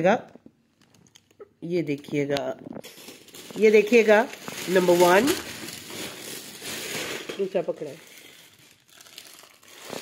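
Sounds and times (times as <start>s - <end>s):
plastic packaging crinkling: 2.1s - 10.0s.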